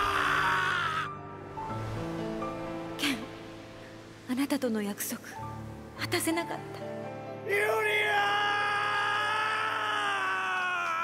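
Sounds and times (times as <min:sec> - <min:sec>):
man screaming: 0:00.0 - 0:01.1, 0:07.5 - 0:11.0.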